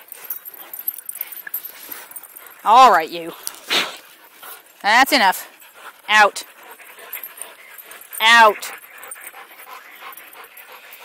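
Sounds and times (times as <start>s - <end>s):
dogs panting: 0.0s - 11.0s.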